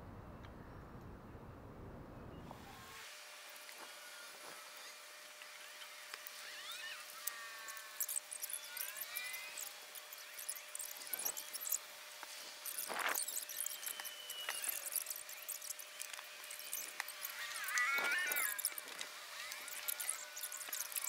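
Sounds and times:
birds chirping: 0:04.8 - 0:21.0.

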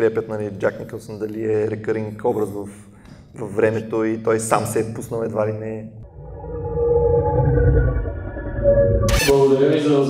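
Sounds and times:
low droning tones: 0:06.0 - 0:09.4.

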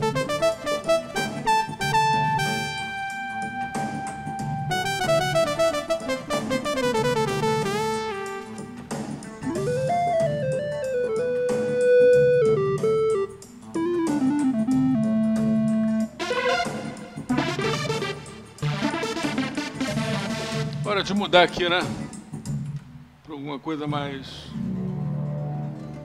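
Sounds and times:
synthesizer lead solo: 0:00.0 - 0:08.6, 0:09.4 - 0:20.6
bright synth chords: 0:00.0 - 0:08.8, 0:09.4 - 0:20.8
low synth backing part: 0:00.0 - 0:08.8, 0:09.4 - 0:20.8.

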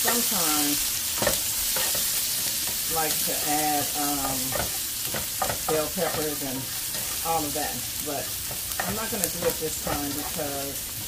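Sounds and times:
wooden spatula scraping a pan: 0:00.0 - 0:10.8
onions sizzling in a pan: 0:00.0 - 0:11.0.

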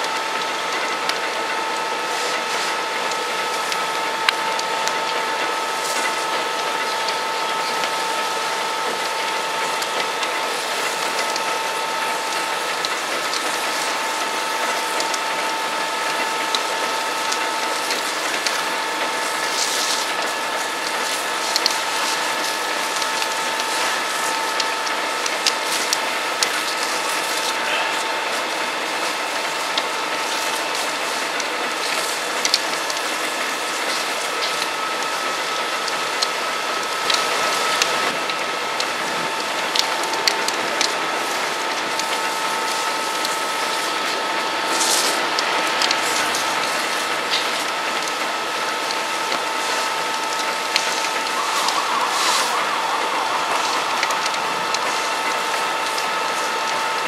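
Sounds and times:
fire crackling and snapping: 0:00.0 - 0:57.0
machine whine: 0:00.0 - 0:57.0.

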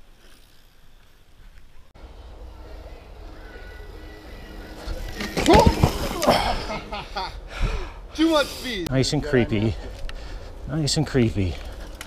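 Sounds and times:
low rumble: 0:02.0 - 0:08.1
bike clattering on the ground: 0:05.0 - 0:06.7.

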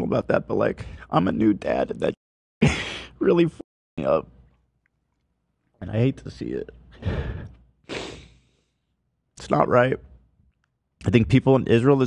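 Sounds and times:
man crying with shaky breaths: 0:02.6 - 0:03.2.

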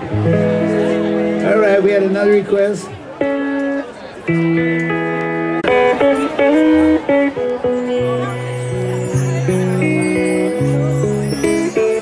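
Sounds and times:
bass guitar: 0:00.0 - 0:02.4, 0:03.2 - 0:12.0
electric guitar chords: 0:00.0 - 0:02.5, 0:03.1 - 0:12.0.

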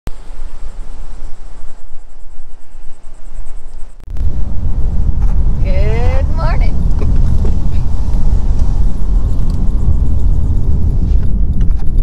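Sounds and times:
wind rumbling on microphone: 0:00.1 - 0:12.0.

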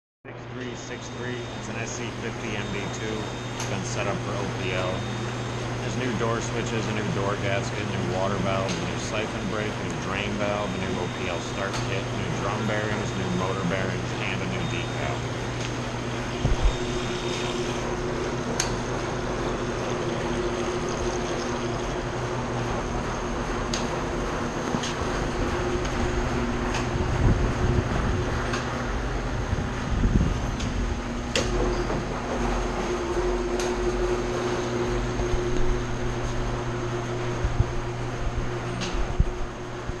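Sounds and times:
washing machine motor and drum: 0:00.3 - 0:40.0.

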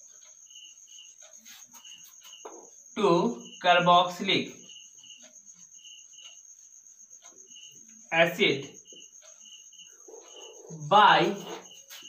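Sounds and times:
cricket chirping: 0:00.0 - 0:12.0.

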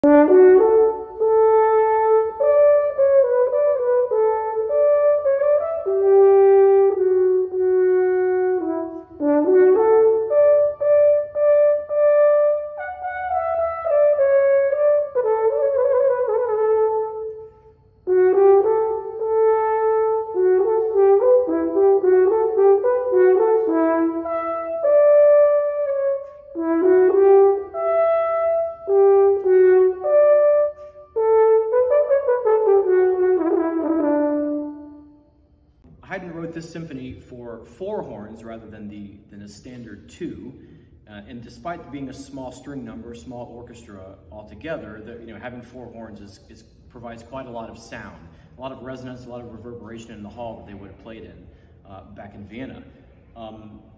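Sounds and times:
french horn melody: 0:00.0 - 0:39.9.

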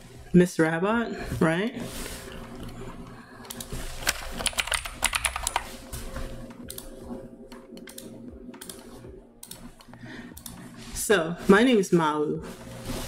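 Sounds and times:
typing on computer keyboard: 0:03.5 - 0:05.7.

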